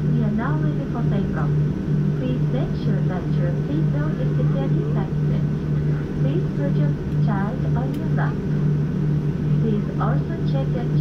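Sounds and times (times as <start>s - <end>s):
airplane cabin hum: 0.0s - 11.0s
indistinct voices talking: 2.2s - 8.7s, 9.4s - 11.0s.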